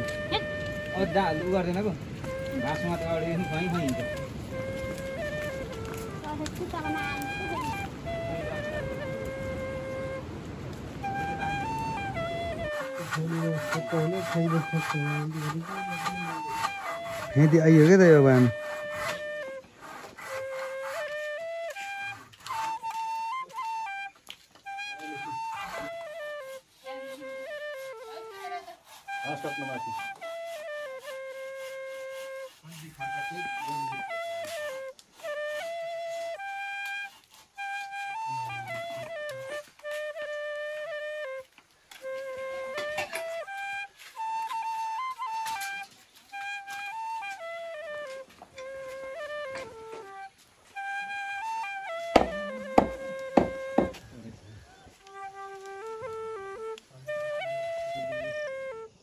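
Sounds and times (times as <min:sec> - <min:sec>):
flute melody: 0:00.0 - 0:59.0.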